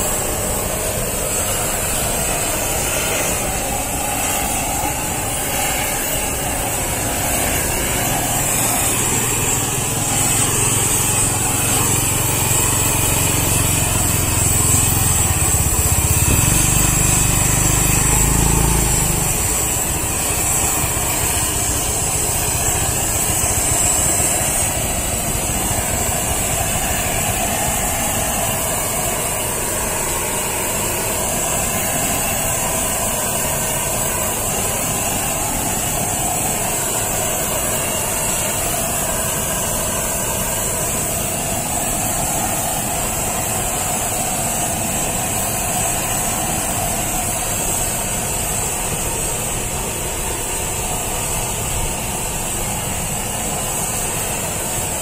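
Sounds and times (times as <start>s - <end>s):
gas torch burning: 0.0s - 55.0s
low motor hum: 2.8s - 27.8s.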